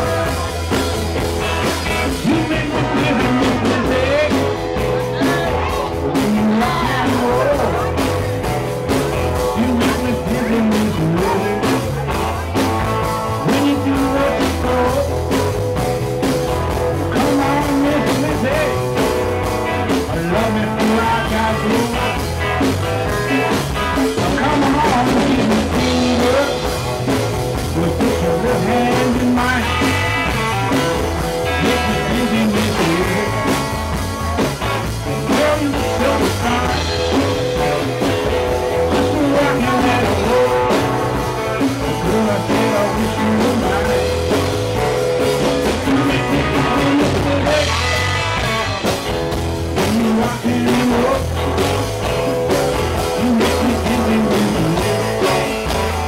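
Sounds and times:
bass guitar: 0.0 - 56.0
drum kit steady beat: 0.0 - 56.0
electric guitar: 0.0 - 56.0.

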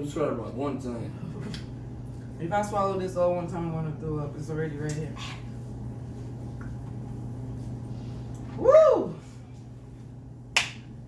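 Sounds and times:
steady low hum: 0.0 - 11.0
sharp hand clap: 10.5 - 10.9.

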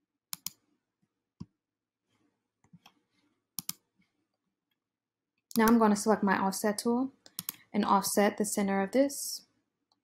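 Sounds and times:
computer mouse clicks: 0.3 - 0.6, 3.6 - 3.9, 5.5 - 5.8, 7.2 - 7.7.

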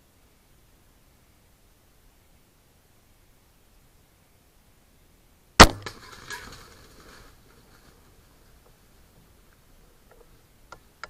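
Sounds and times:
crossbow firing crack: 5.6 - 7.0.

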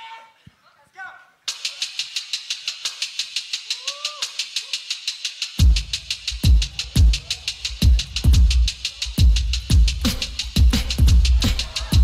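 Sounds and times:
vocal hi-hat ticks: 1.5 - 12.0.

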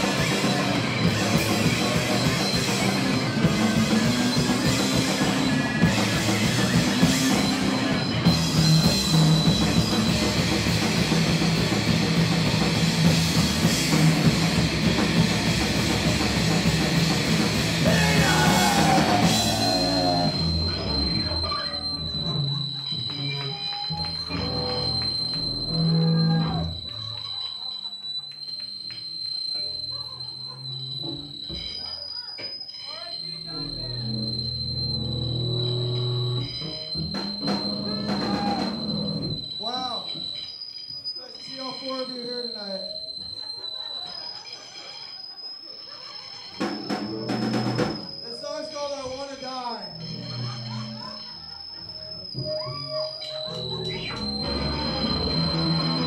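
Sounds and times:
bass and guitar notes: 0.0 - 22.5, 24.0 - 26.8, 33.6 - 39.4, 52.1 - 56.0
amplifier feedback whine: 0.0 - 27.0, 32.9 - 44.3, 46.6 - 56.0
crowd chatter: 0.0 - 34.9, 41.1 - 56.0.

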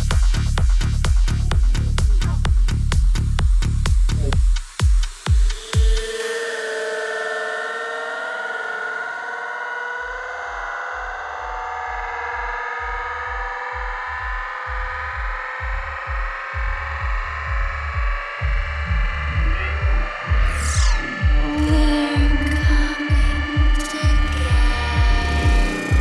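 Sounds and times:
low pulsing bass: 0.0 - 6.2, 10.0 - 26.0
electronic dance music: 0.0 - 8.4, 10.5 - 26.0
held synthesizer chords: 5.3 - 26.0.

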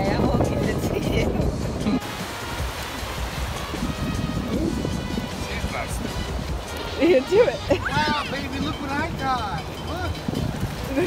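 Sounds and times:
small waves washing on shore: 0.0 - 11.0
soft background music: 0.0 - 11.0
wind rumbling on microphone: 0.0 - 11.0.

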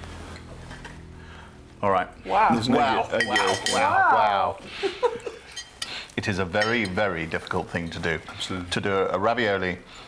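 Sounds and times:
man speaking: 1.8 - 4.6.

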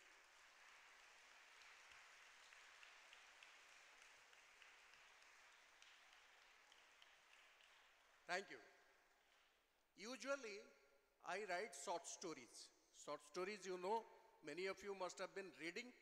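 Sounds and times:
audience applause: 0.0 - 8.4.

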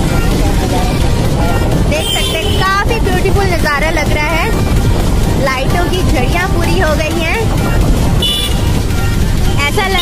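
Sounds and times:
road and wind rumble: 0.0 - 10.0
high-pitched horn toot: 8.2 - 8.8.

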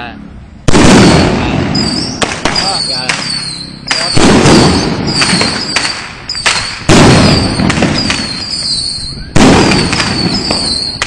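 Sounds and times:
firecracker crackling bursts: 0.7 - 11.0
sharp firework pops: 0.7 - 11.0
high falling whistles: 1.7 - 11.0.

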